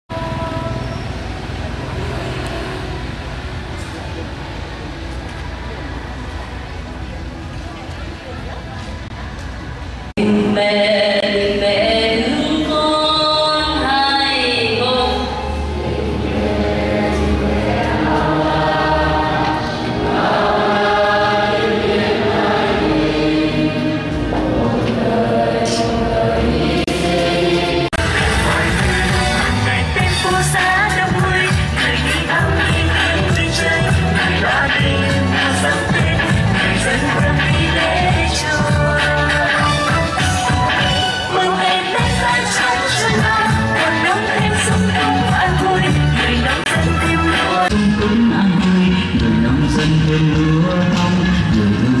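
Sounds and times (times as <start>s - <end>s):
people's voices: 0.1s - 52.0s
street traffic: 0.1s - 52.0s
congregation singing a hymn: 14.6s - 30.6s.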